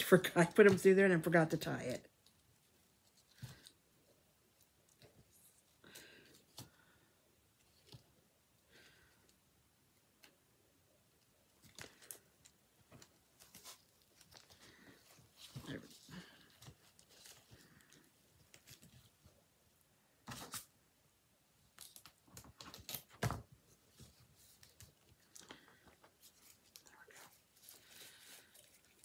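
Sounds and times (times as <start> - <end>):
ribbon rustling: 11.3 - 19.4, 21.7 - 29.0.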